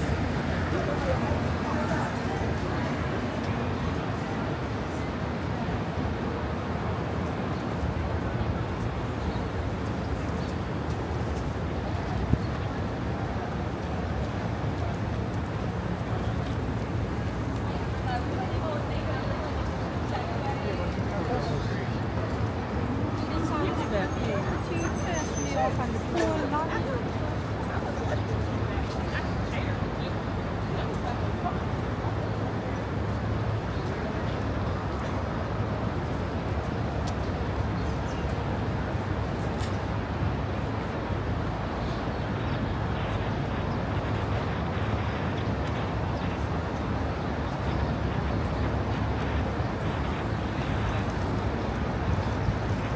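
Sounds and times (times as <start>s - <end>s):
road traffic rumble: 0.0s - 52.9s.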